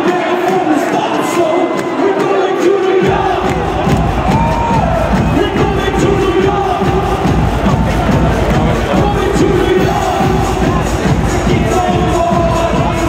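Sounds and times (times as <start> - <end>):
crowd cheering and shouting: 0.0 - 13.0
dance track: 0.0 - 13.0
heavy bass: 3.0 - 13.0.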